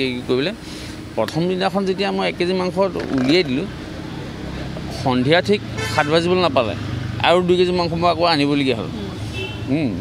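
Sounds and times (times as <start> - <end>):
man speaking: 1.2 - 3.7, 4.9 - 9.0.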